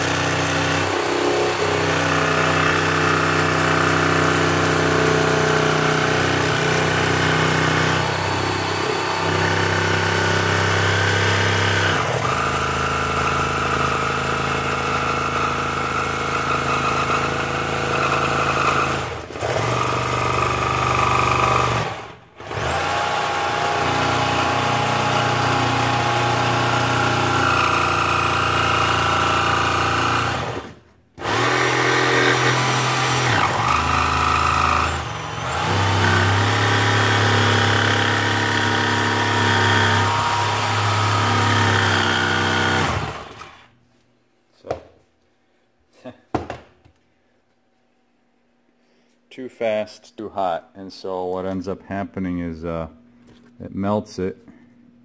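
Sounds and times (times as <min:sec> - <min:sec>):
jigsaw cutting plastic: 0:00.0 - 0:43.8.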